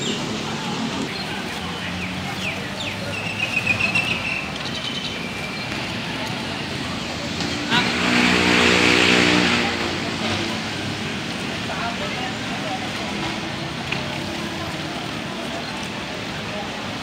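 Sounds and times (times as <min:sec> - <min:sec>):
street noise: 0:00.0 - 0:17.0
vehicle engine revving: 0:06.6 - 0:11.6.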